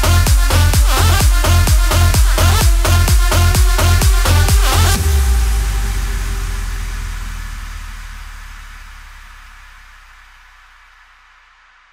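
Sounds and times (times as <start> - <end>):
low bass note: 0.0 - 11.9
white-noise hiss: 5.0 - 11.9.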